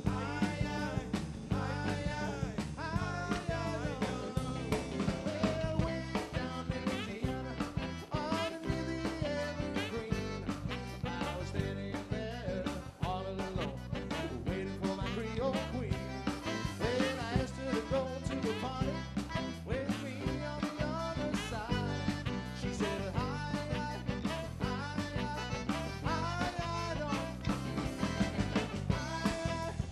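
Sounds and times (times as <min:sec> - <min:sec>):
live band playing upbeat music: 0:00.0 - 0:29.9.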